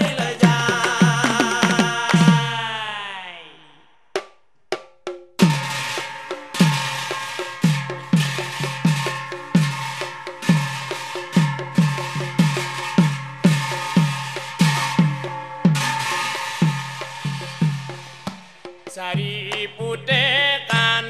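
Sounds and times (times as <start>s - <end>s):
drums beaten in steady rhythm: 0.0s - 2.7s, 4.2s - 21.0s
brass hand cymbals ringing: 5.4s - 19.0s.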